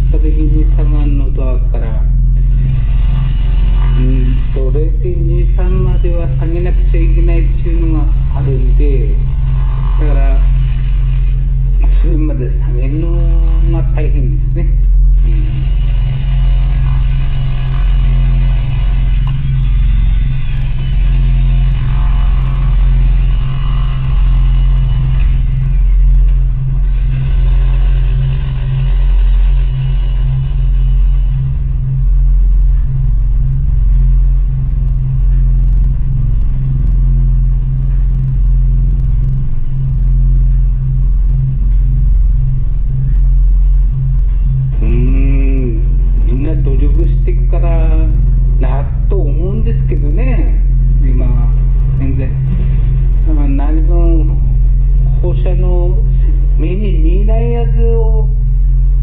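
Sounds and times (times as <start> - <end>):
low rumbling drone: 0.0 - 59.0.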